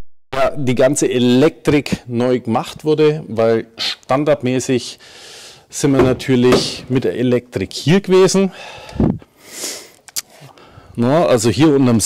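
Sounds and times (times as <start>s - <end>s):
person sniffing: 5.0s - 5.6s, 8.6s - 10.6s.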